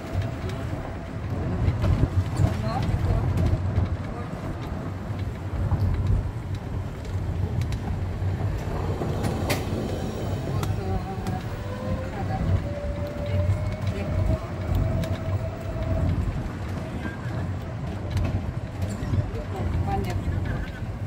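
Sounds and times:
cart rumbling on road: 0.0 - 21.0
rattles and clicks from cart body: 0.0 - 21.0.

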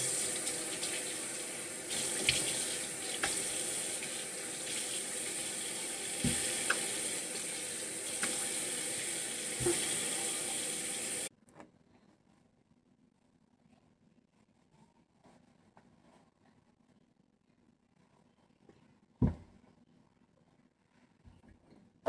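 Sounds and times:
faucet running: 0.0 - 11.3.

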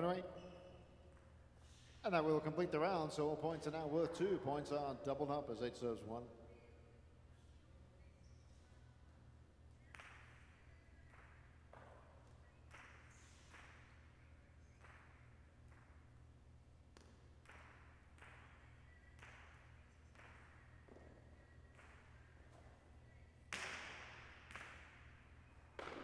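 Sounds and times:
ball cracking off walls: 23.5 - 25.1, 25.7 - 26.0.

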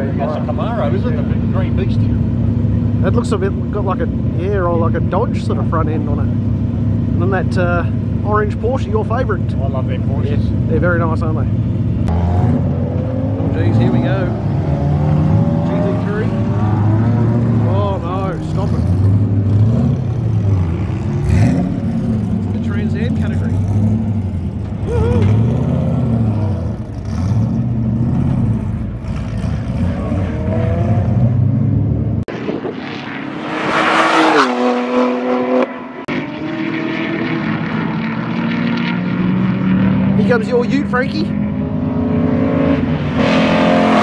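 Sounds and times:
engine note climbing: 0.0 - 44.0
race car engines: 0.0 - 44.0
rush of noise: 31.7 - 34.6.

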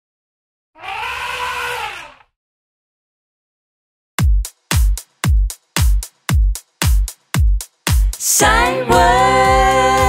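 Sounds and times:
cartoon elephant trumpeting: 0.8 - 2.3.

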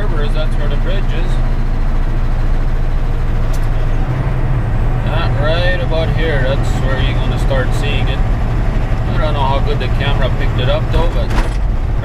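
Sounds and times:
truck engine and road noise: 0.0 - 12.0.

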